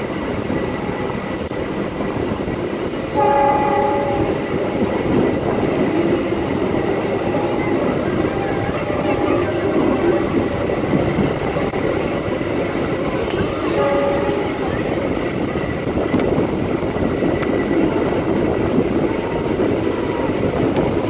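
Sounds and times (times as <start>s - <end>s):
train wheels rumbling on rails: 0.0s - 21.0s
train horn: 3.2s - 4.4s, 13.4s - 14.8s.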